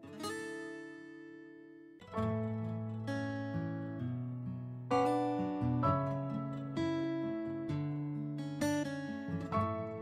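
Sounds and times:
acoustic guitar chords: 0.0s - 10.0s.

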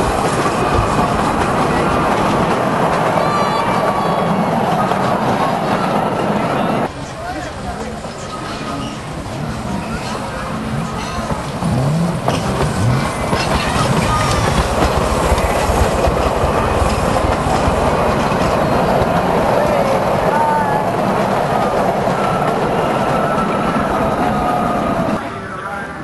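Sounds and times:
train wheels rumbling and rattling: 0.0s - 25.2s.

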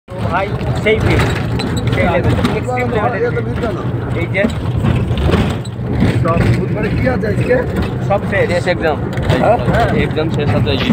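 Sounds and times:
people talking: 0.1s - 4.6s, 6.1s - 10.9s.

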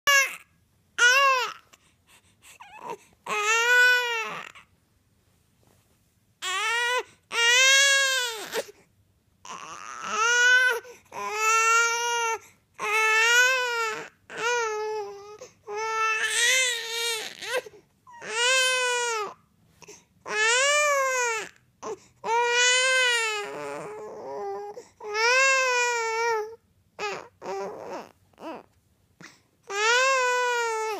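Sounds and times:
infant crying: 0.1s - 0.4s, 1.0s - 1.8s, 2.6s - 4.7s, 6.4s - 8.8s, 9.4s - 19.4s, 20.3s - 28.7s, 29.6s - 30.9s
infant breathing: 1.5s - 3.3s.

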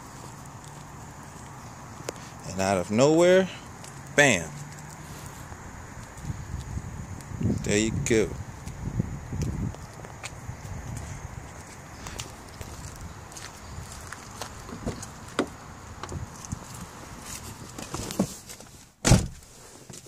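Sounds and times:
footsteps: 0.0s - 2.5s, 3.2s - 7.7s, 8.4s - 20.0s
car door shutting: 19.0s - 19.5s.

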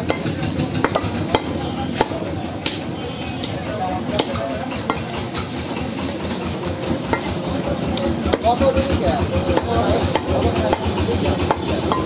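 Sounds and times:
market background din: 0.0s - 12.0s.

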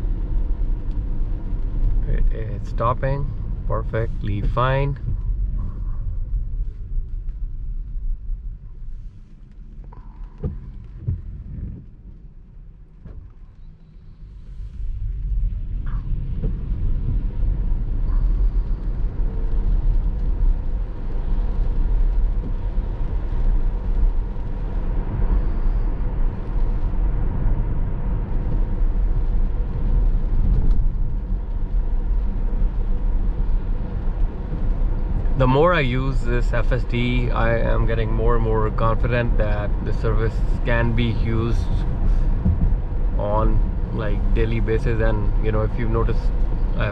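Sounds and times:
tyre noise on wet road: 0.0s - 46.9s.

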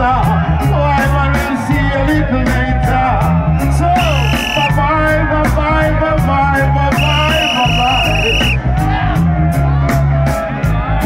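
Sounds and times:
reggae band playing: 3.6s - 8.8s.

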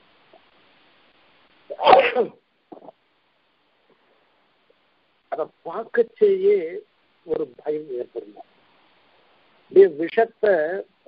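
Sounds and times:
person sneezing: 1.7s - 2.9s.

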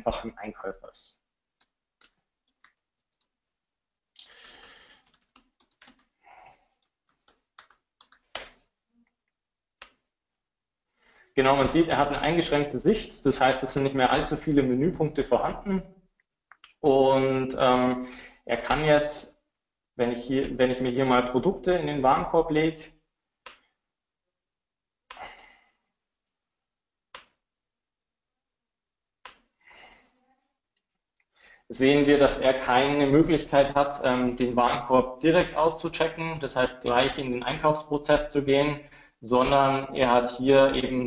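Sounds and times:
typing on computer keyboard: 1.6s - 3.4s, 4.9s - 6.1s, 7.0s - 8.6s.

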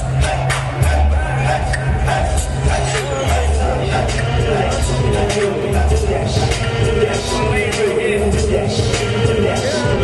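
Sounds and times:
loud music with heavy bass: 0.0s - 10.0s.

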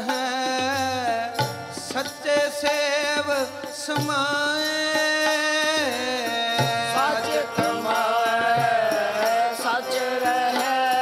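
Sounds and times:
devotional singing: 0.0s - 11.0s.

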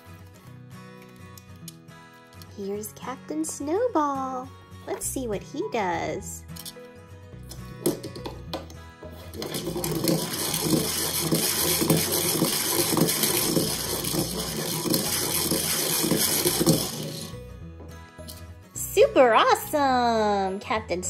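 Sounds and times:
background music: 0.0s - 21.0s
pull-string toy whirring and rattling: 9.2s - 17.4s.

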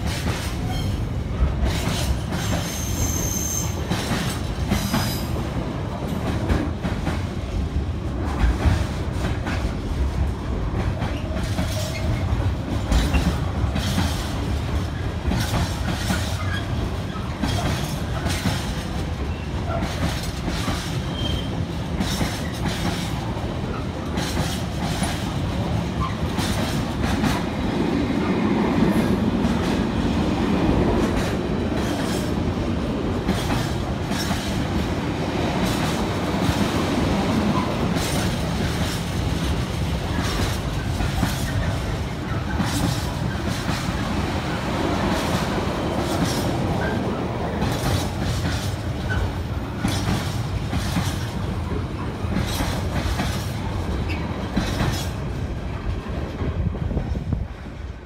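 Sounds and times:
freight train rumbling: 0.0s - 58.0s
wheels clickety-clack on rail joints: 0.0s - 58.0s.

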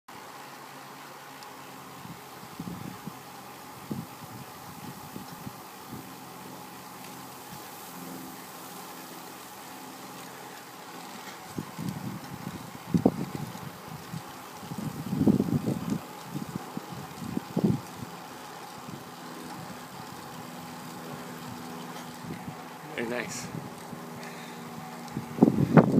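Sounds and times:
wind buffeting microphone: 1.9s - 6.6s, 10.6s - 25.9s.

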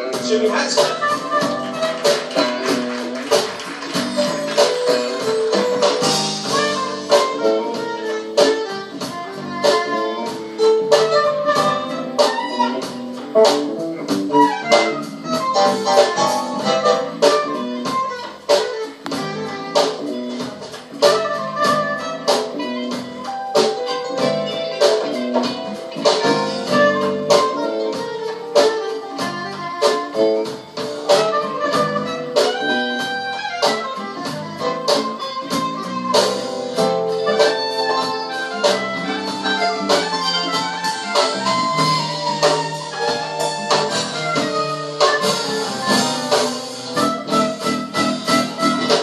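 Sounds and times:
guitar: 0.0s - 49.0s
saxophone melody: 0.0s - 49.0s
steady drum beat: 0.0s - 49.0s.

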